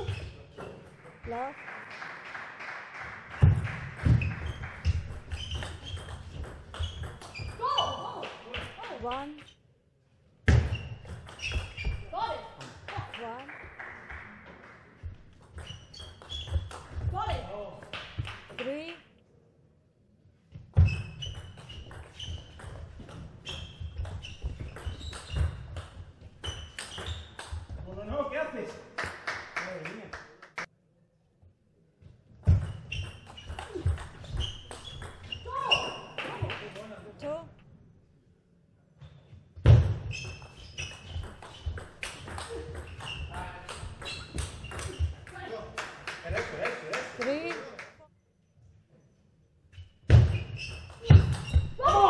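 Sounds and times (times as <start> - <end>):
shoes squeaking on floor: 0.0 - 0.8, 4.0 - 9.6, 10.5 - 12.5, 15.4 - 17.4, 20.5 - 28.2, 32.4 - 36.5, 39.0 - 45.6, 49.7 - 52.0.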